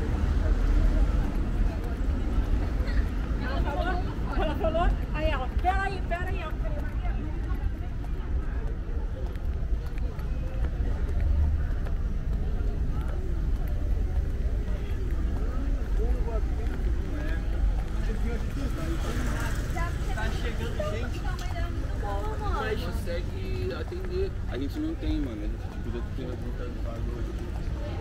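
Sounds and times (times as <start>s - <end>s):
people talking: 0.0s - 28.0s.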